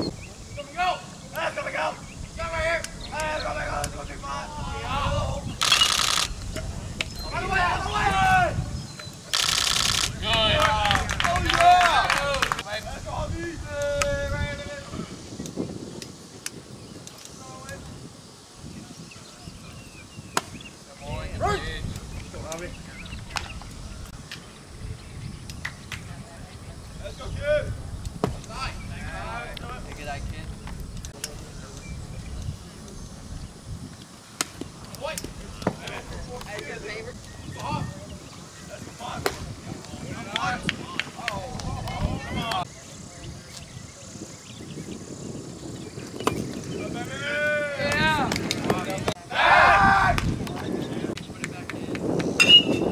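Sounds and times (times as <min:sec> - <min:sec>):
distant people calling out: 0:00.0 - 0:06.2, 0:07.2 - 0:08.7.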